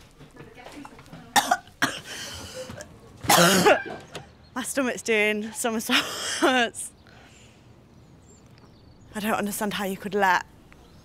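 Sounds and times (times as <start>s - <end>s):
woman coughing: 1.4s - 2.4s, 3.3s - 4.0s, 5.9s - 6.7s.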